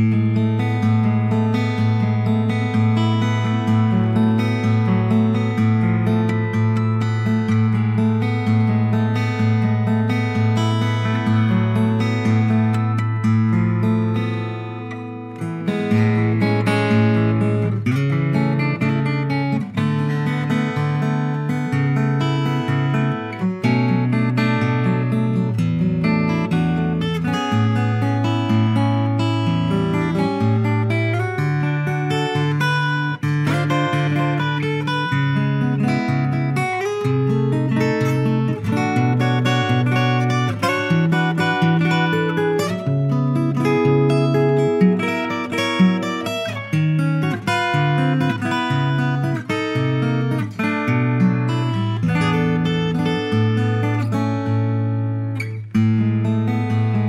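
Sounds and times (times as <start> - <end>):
fingerstyle acoustic guitar: 0.0 - 57.0.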